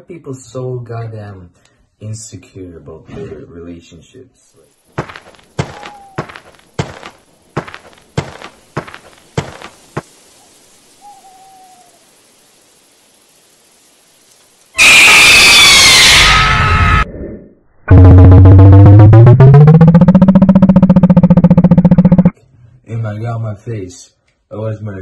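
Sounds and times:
sharp knocks: 5.0s - 10.1s
faint owl-like hoot: 5.7s - 6.3s, 10.4s - 12.1s
loud distorted screech: 14.8s - 17.1s.

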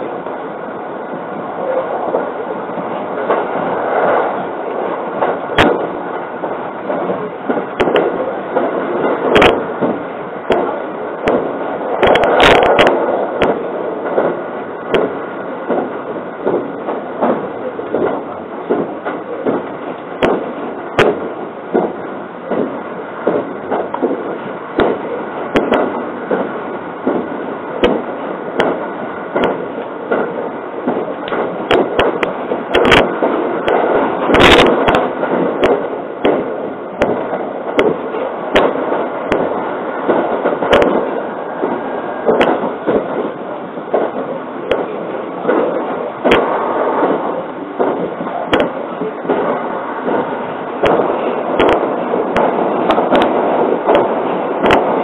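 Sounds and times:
train wheels rumbling on rail: 0.0s - 55.0s
track clicks and knocks: 5.2s - 28.8s.

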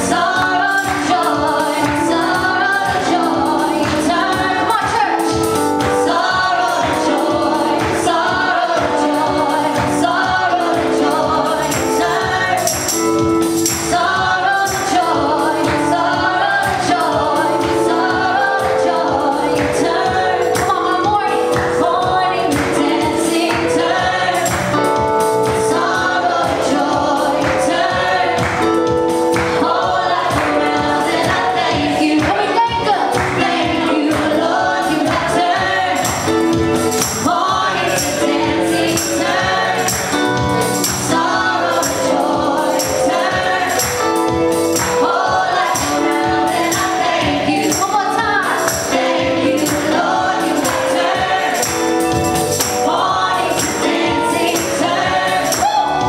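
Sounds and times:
accompaniment with steady beat: 0.0s - 56.0s
women singing gospel song: 0.0s - 56.0s.

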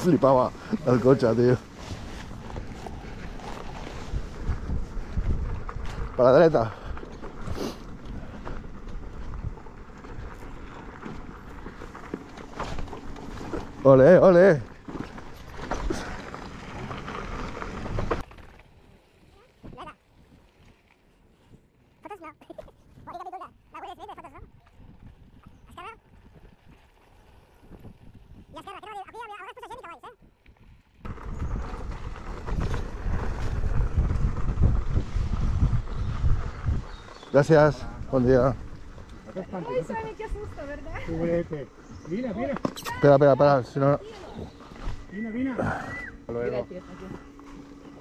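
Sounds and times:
wind rumbling on microphone: 0.0s - 13.8s, 22.8s - 29.1s, 30.2s - 42.2s
tyres rolling over gravel: 0.0s - 30.0s, 30.6s - 48.0s
voices: 22.0s - 24.5s, 28.5s - 30.2s.

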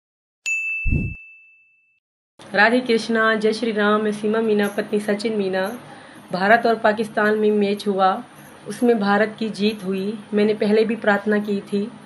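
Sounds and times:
short deep thump: 0.9s - 1.2s.

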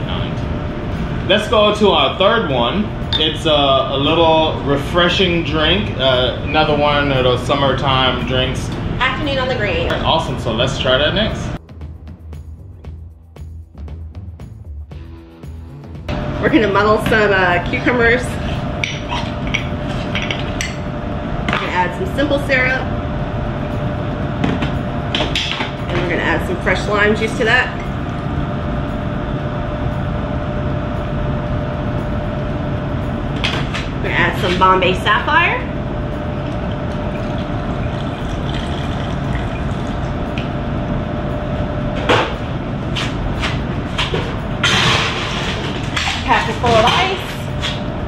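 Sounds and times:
steady background hum: 0.0s - 12.9s, 15.9s - 48.0s
steady low rumble: 0.0s - 48.0s
bottles and glasses clinking: 18.8s - 20.9s
liquid pouring into glass: 36.4s - 40.1s.

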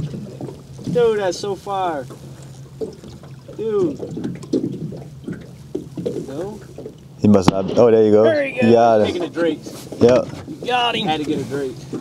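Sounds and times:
water lapping and splashing: 0.0s - 12.0s.

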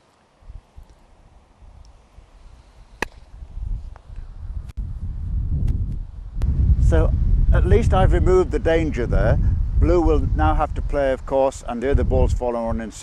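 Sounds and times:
wind rumbling on microphone: 0.4s - 13.0s
croquet mallet striking ball: 3.0s - 3.2s.

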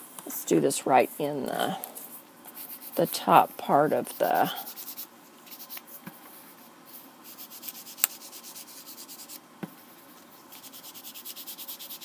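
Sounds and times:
foam pad rubbing on cardstock: 2.5s - 9.4s, 10.4s - 12.0s.

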